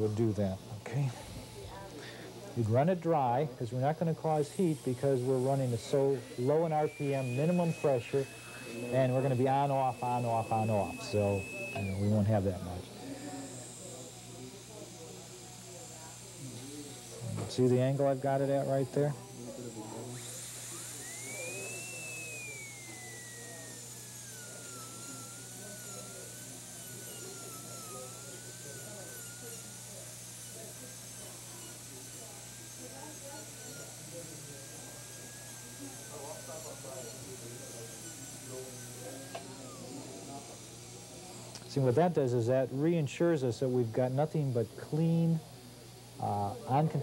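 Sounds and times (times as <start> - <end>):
dental drill whining: 0.0 - 47.0.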